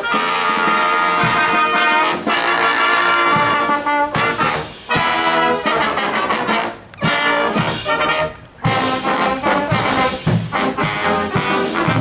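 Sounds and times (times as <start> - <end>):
brass band playing a march: 0.0 - 12.0.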